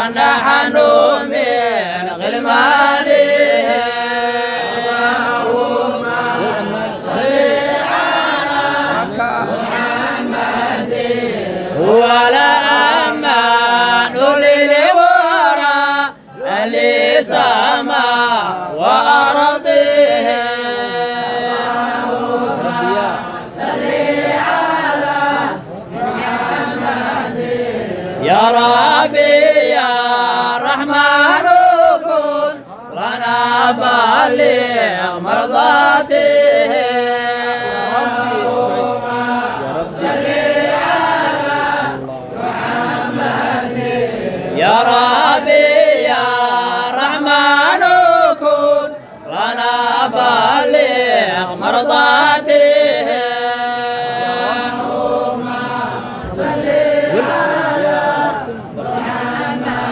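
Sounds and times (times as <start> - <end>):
men chanting a devotional song: 0.0 - 59.9.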